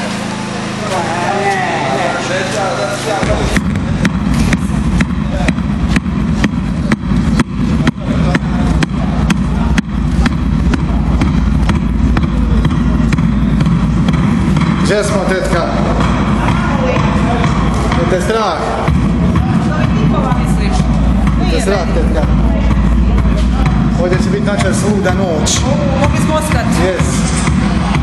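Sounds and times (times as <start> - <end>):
voices talking: 0.0 - 28.0
low rumble on microphone: 3.0 - 28.0
footsteps: 3.1 - 28.0.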